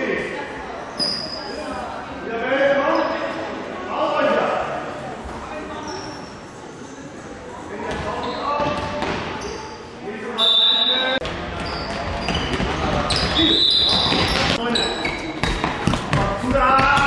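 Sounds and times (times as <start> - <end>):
ball bouncing on hall floor: 7.9 - 9.6, 11.2 - 17.0
referee's whistle blast: 10.4 - 11.2.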